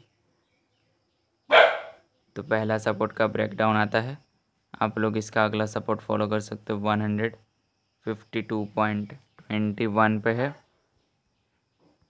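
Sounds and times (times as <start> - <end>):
dog barking: 1.5 - 2.0.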